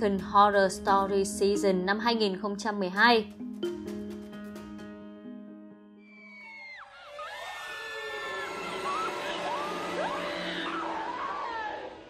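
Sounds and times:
eerie horror music: 6.0s - 12.0s.

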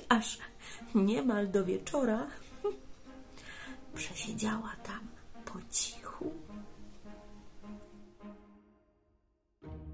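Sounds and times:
soft music with sustained notes: 0.0s - 9.9s
woman whispering: 4.0s - 6.5s.

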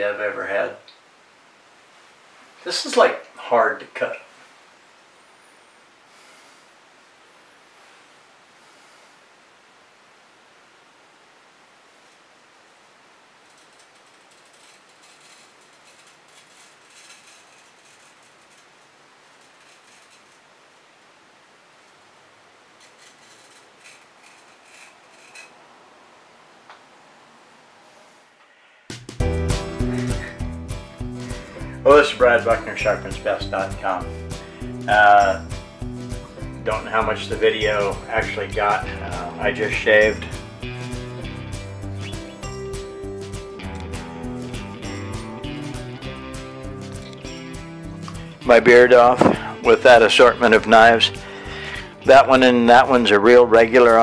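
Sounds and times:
low hiss: 0.0s - 54.0s
acoustic guitar music: 29.2s - 54.0s.

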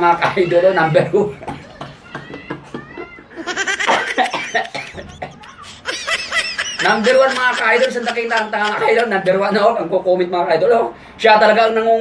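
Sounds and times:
man laughing hard: 3.0s - 9.3s.

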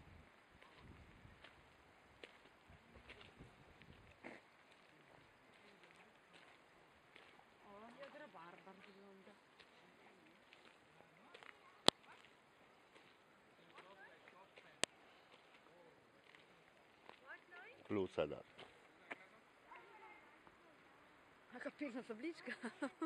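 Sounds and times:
footsteps on gravel: 10.4s - 18.9s.

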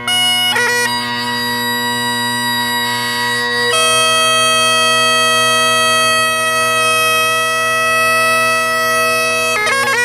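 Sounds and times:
bagpipe drones and chanter note: 0.0s - 10.0s.

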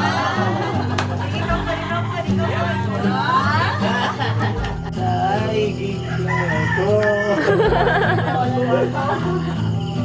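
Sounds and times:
rooster crowing: 6.0s - 7.7s.

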